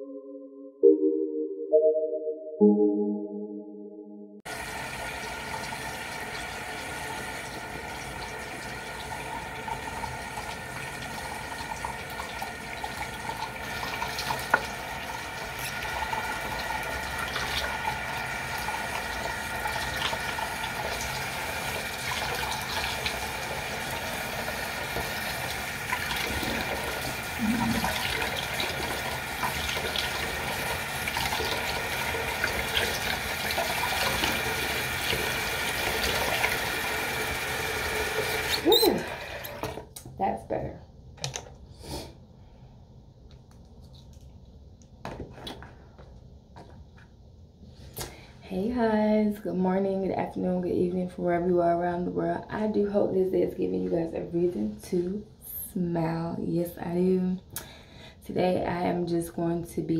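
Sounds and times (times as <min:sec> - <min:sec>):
tap running into sink: 0:13.9 - 0:14.9, 0:38.1 - 0:39.9.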